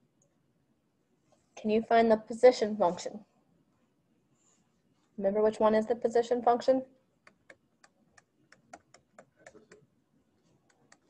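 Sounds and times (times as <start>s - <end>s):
stylus tapping screen: 7.2s - 9.9s, 10.6s - 11.0s.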